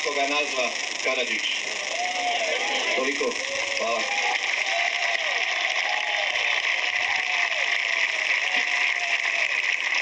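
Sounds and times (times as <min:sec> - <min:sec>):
crowd applauding: 0:00.0 - 0:10.0.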